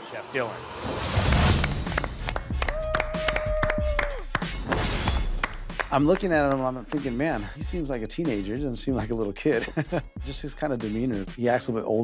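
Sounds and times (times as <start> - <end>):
people clapping: 1.3 - 7.2
held cheer: 2.5 - 4.3.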